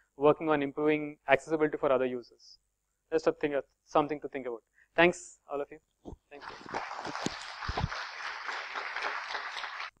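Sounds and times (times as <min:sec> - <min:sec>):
audience applauding: 0:06.4 - 0:10.0.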